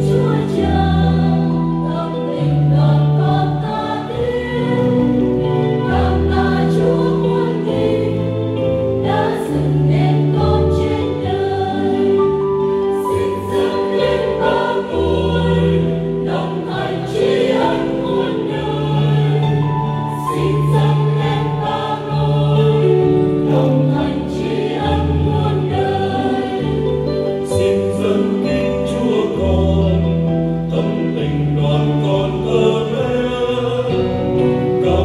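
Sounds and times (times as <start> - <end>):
mixed choir singing a hymn: 0.0 - 35.0.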